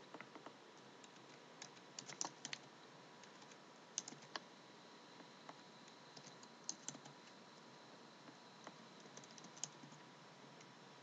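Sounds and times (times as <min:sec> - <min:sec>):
low steady hiss: 0:00.0 - 0:11.0.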